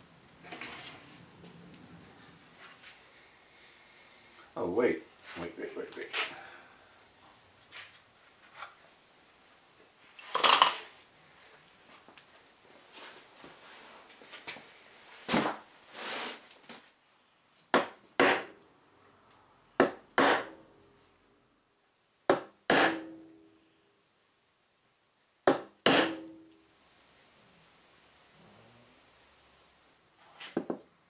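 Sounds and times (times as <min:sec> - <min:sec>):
hammer knocking wooden dowel: 0:19.8 - 0:20.6.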